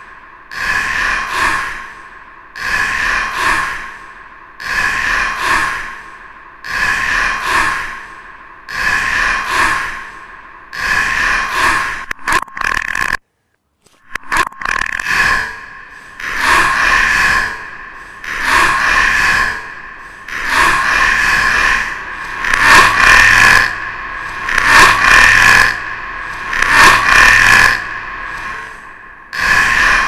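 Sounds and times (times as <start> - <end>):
swells of noise: 15.4 - 30.0.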